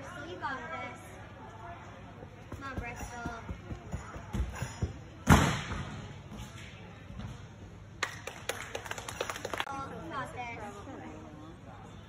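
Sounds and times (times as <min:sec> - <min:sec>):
hand-clapping: 0:08.0 - 0:09.7.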